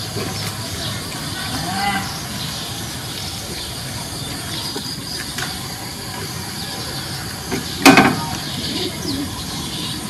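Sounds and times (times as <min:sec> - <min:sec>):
low bird cooing: 0:08.2 - 0:10.0.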